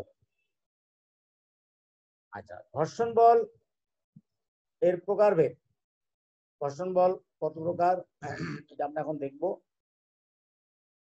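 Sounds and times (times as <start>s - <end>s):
man talking: 2.4s - 3.5s, 6.6s - 9.6s
man clearing throat: 8.2s - 8.7s.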